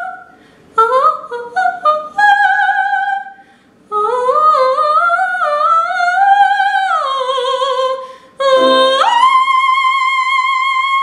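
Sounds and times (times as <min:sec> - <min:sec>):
woman singing operatically: 0:04.0 - 0:11.0.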